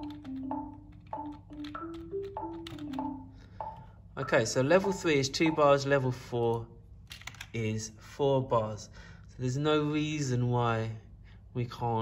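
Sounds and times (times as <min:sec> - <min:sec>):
metronome clicking: 0:00.0 - 0:04.4
marimba riff: 0:00.0 - 0:05.8.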